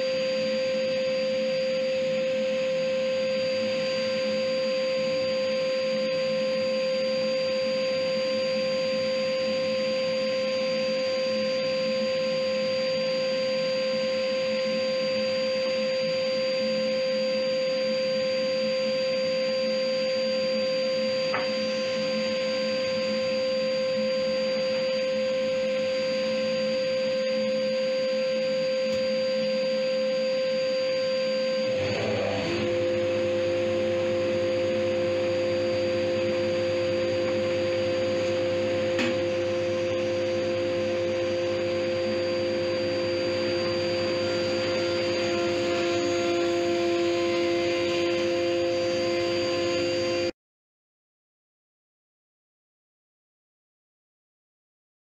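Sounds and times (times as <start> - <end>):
planer machine hum: 20.6 - 27.6, 28.4 - 50.3
dust extraction running: 31.4 - 50.3.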